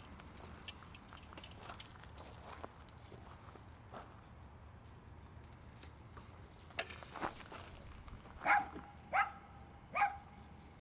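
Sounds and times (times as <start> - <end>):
dog barking: 8.4 - 10.2.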